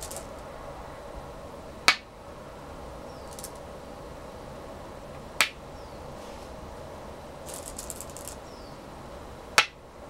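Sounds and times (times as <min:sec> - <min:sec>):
faint clicks of stones: 0:00.0 - 0:00.4, 0:03.3 - 0:03.6, 0:07.5 - 0:08.4.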